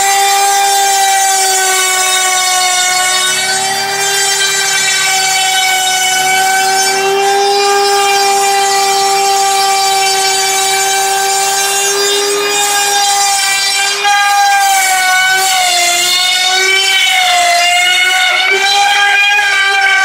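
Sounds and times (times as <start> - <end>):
trim router whining: 0.0 - 20.0.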